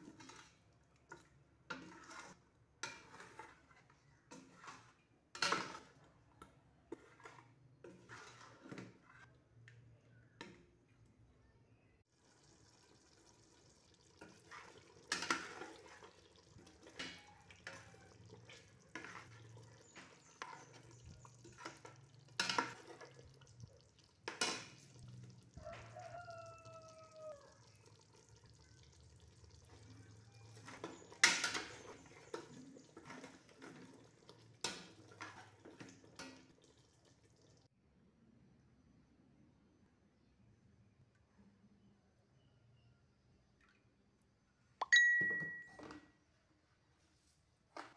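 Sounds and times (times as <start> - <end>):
dishes and utensils clinking: 14.1 - 23.6, 29.8 - 36.7, 44.8 - 46.1.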